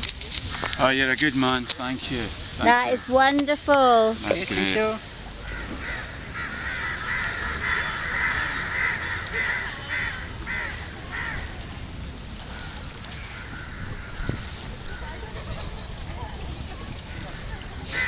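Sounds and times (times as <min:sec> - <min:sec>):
crows cawing: 0:05.3 - 0:11.5, 0:12.5 - 0:15.1.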